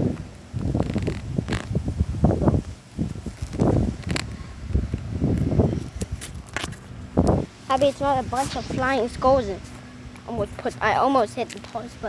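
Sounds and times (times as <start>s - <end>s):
hands rubbing on microphone: 3.1s - 4.4s.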